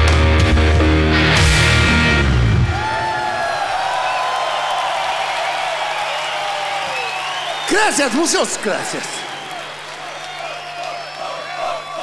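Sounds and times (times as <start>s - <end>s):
stadium crowd cheering and whooping: 2.6s - 12.0s.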